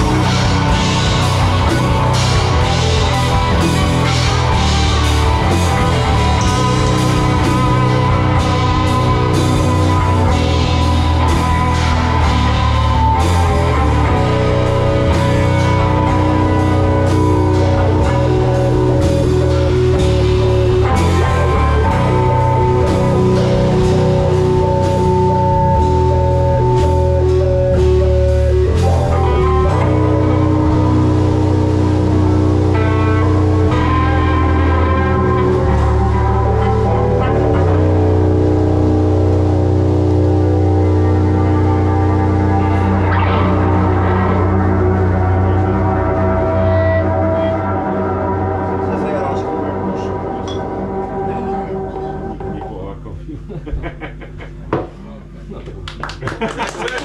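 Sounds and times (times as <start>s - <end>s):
heavy rock band playing: 0.0s - 52.7s.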